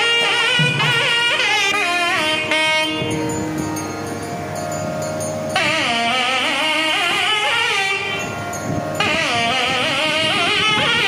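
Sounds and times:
nadaswaram melody: 0.0s - 11.0s.

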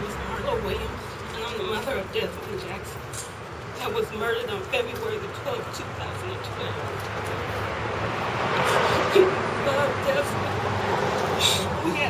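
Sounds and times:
passing motor vehicle: 0.0s - 12.0s.

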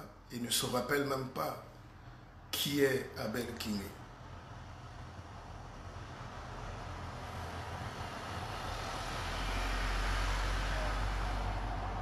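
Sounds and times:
passing vehicle rumble: 3.2s - 12.0s.

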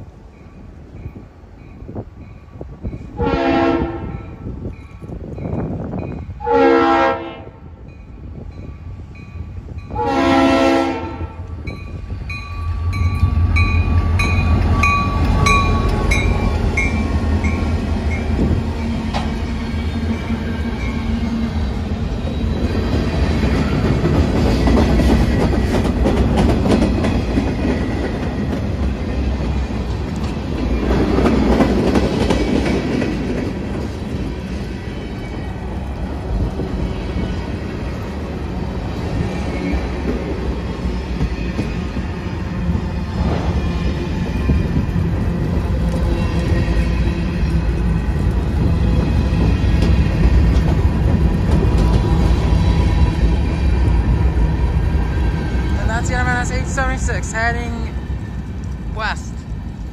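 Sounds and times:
diesel locomotive engine rumble: 0.0s - 59.9s
train bell ringing: 4.2s - 6.4s, 7.8s - 10.1s, 11.6s - 19.2s, 20.0s - 21.3s.

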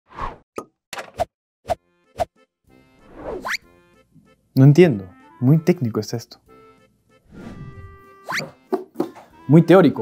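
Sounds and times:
rising whoosh: 7.3s - 8.0s.

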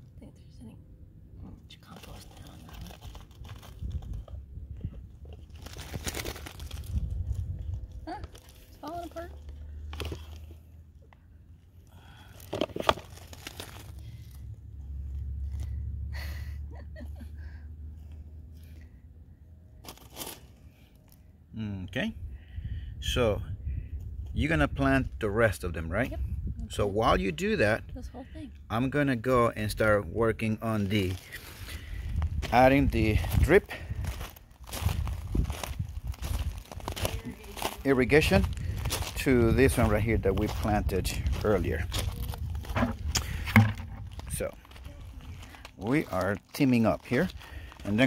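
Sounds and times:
soil and mulch rustling: 1.8s - 11.0s, 11.8s - 15.8s, 19.7s - 21.2s, 30.6s - 48.0s
low rumbling: 2.4s - 12.3s, 31.4s - 45.8s
footsteps on gravel: 31.0s - 48.0s.

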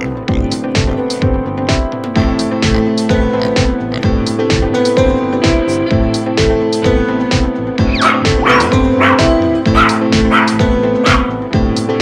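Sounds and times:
upbeat music with steady beat: 0.0s - 12.0s
dog barking: 7.9s - 11.4s.

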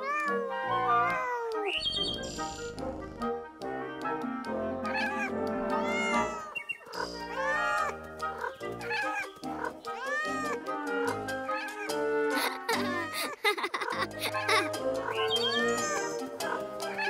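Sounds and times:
cat meowing: 0.0s - 1.7s, 4.9s - 6.6s, 7.2s - 7.9s, 10.0s - 10.6s, 15.5s - 16.2s
background music: 0.0s - 17.0s.

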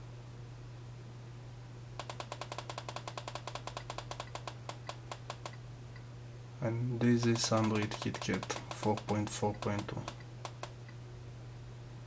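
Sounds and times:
mouse button clicking rapidly: 2.0s - 5.6s, 7.2s - 10.8s.

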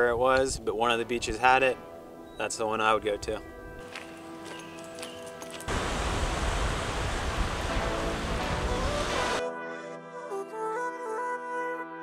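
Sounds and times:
background music with steady tones: 0.0s - 5.7s, 7.4s - 12.0s
rushing water: 5.7s - 9.4s.

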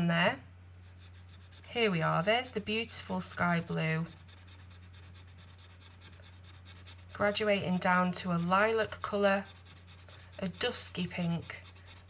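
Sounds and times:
marker rubbing on paper: 0.8s - 12.0s.

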